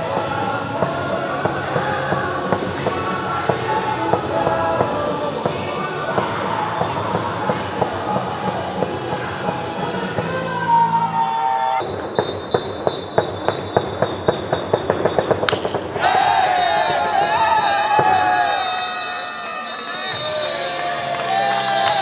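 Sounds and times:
players shouting and cheering: 0.0s - 11.8s, 15.8s - 22.0s
music: 0.0s - 18.6s, 20.2s - 22.0s
bat hitting ball: 15.5s - 15.8s.

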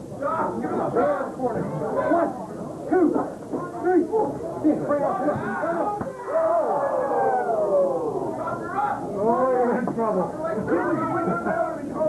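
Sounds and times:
people shouting and yelling: 0.2s - 9.7s.

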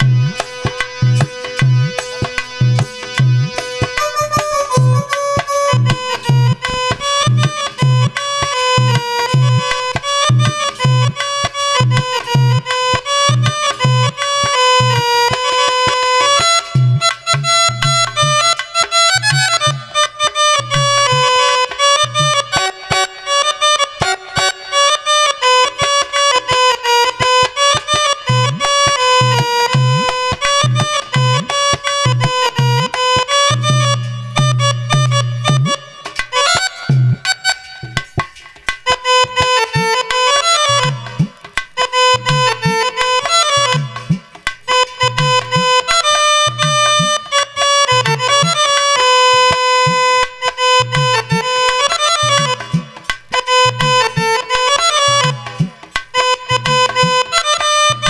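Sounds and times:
electronic keyboard melody: 0.0s - 38.1s
dholak drum beat: 0.0s - 58.0s.

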